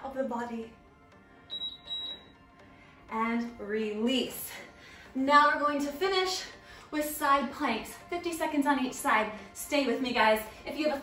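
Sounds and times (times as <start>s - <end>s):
interval timer beeping: 1.5s - 2.6s.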